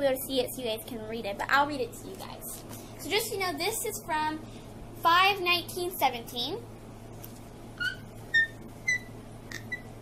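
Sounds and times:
high-pitched squeaks: 0:07.8 - 0:10.0.

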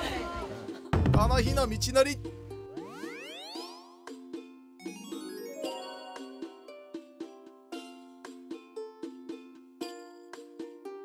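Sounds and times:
background music steady notes: 0:00.0 - 0:11.0
cartoon rising swoop: 0:02.7 - 0:04.1.

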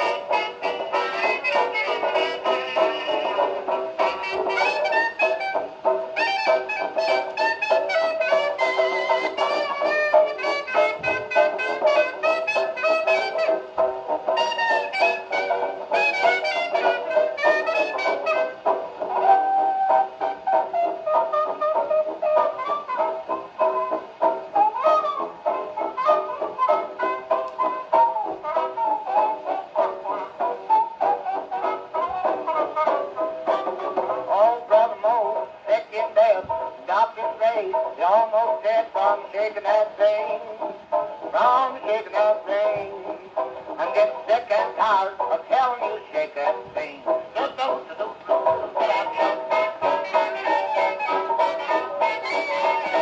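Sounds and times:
jazz dance band on old record: 0:00.0 - 0:53.0.

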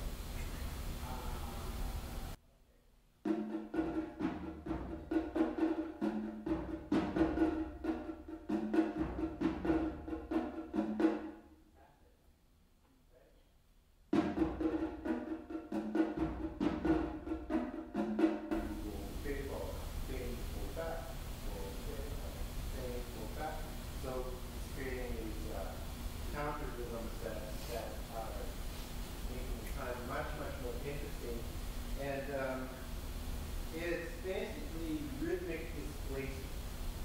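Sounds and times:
drums struck with sticks: 0:03.3 - 0:11.4, 0:14.1 - 0:33.0.

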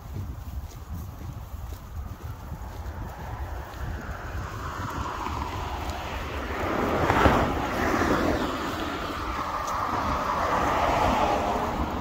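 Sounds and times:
cars passing: 0:00.0 - 0:12.0
wind rumble on microphone: 0:00.0 - 0:12.0.

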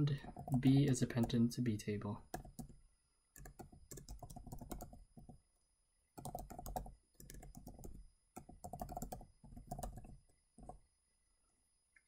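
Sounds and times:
computer keyboard typing: 0:00.2 - 0:01.4, 0:02.3 - 0:02.8, 0:03.4 - 0:05.4, 0:06.2 - 0:10.8.

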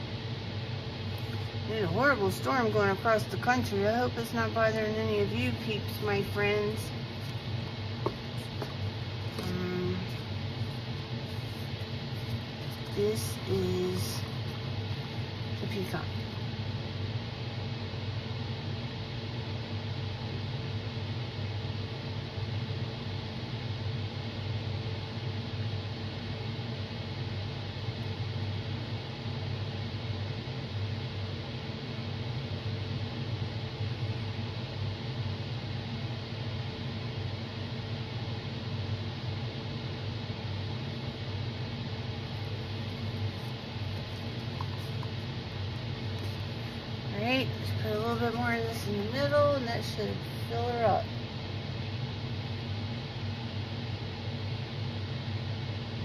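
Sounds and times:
steady low hum with hiss: 0:00.0 - 0:56.0.

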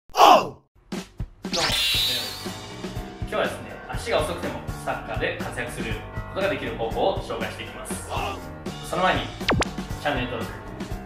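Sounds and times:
intro music: 0:09.4 - 0:09.8.

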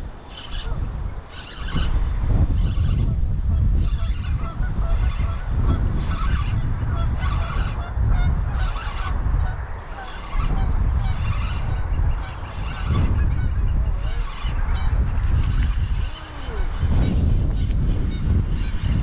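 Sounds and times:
wind on microphone: 0:00.0 - 0:19.0
geese honking: 0:03.8 - 0:19.0.

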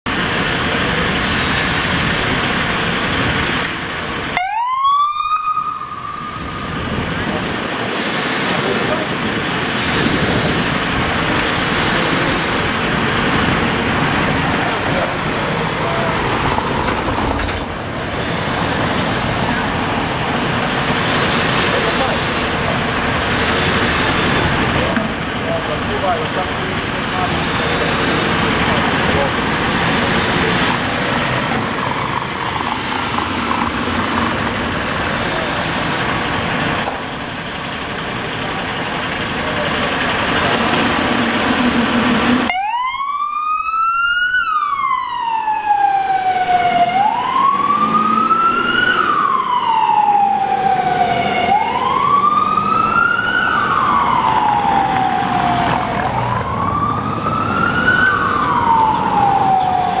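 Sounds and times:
fire engine engine: 0:00.0 - 1:00.0
street noise: 0:00.0 - 1:00.0
siren wailing: 0:04.3 - 0:07.3, 0:42.4 - 1:00.0.

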